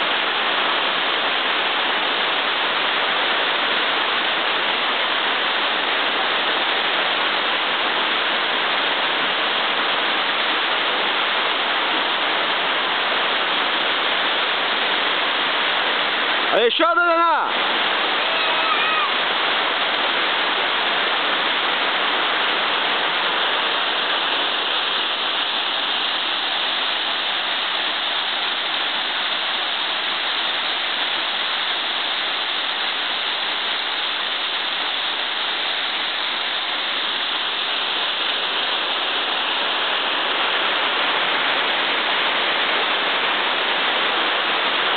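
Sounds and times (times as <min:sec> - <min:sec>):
water rushing from waterfall: 0:00.0 - 0:44.9.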